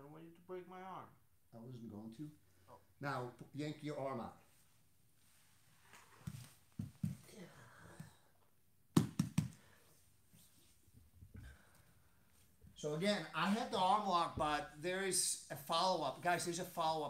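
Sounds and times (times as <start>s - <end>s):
bodies thudding on foam mats: 6.2s - 7.3s, 9.0s - 9.6s.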